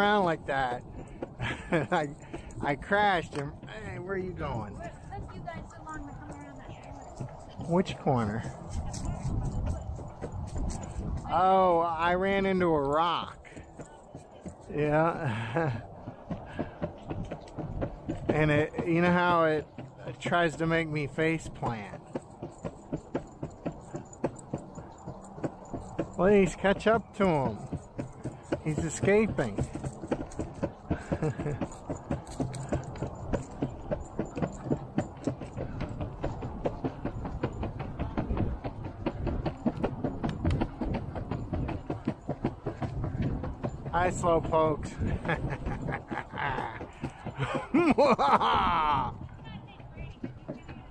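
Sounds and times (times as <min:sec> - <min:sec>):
skateboard wheels rolling on concrete: 0:00.0 - 0:50.9.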